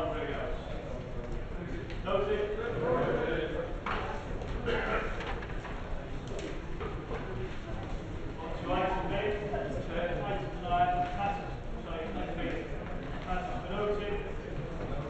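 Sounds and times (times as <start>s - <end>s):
person talking in a hall: 0.0s - 15.0s.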